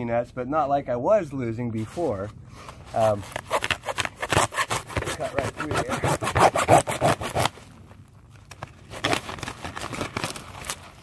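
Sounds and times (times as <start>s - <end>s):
hacksaw cutting plastic pipe: 3.0s - 7.5s.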